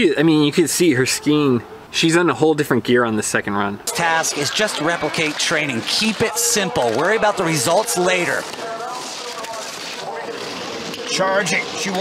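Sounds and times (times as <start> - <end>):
faint voices: 3.8 - 12.0.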